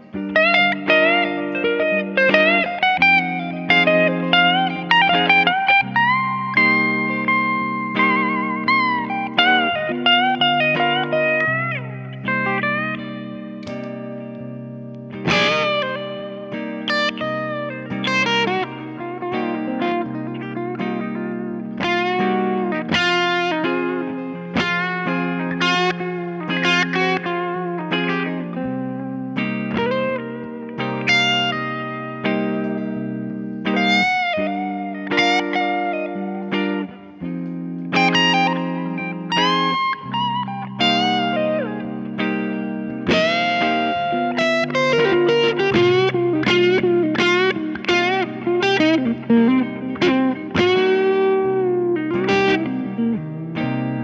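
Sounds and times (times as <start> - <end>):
electric guitar lead with bends: 0.0 - 54.0.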